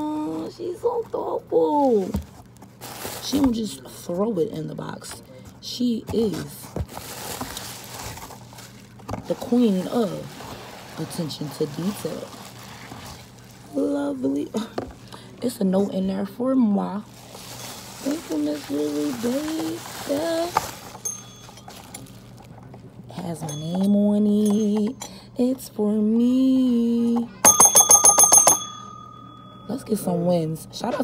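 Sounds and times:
cardboard box and bubble wrap rustling: 0:00.0 - 0:03.9, 0:05.8 - 0:15.0, 0:17.0 - 0:22.8
low steady hum: 0:00.0 - 0:31.0
plastic package crinkling: 0:00.3 - 0:03.6, 0:06.7 - 0:14.0, 0:17.0 - 0:22.8.

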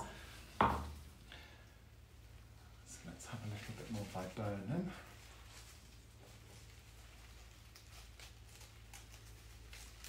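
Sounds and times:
knock on a tabletop: 0:00.6 - 0:00.9.

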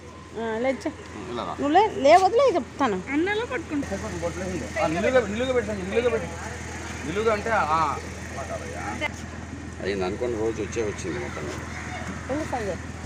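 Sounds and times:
steady low hum: 0:00.0 - 0:13.0
people talking: 0:00.4 - 0:09.1, 0:09.8 - 0:12.8.

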